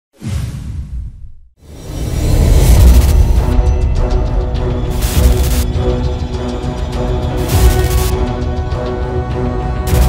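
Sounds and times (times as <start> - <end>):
loud music: 2.8 - 10.0.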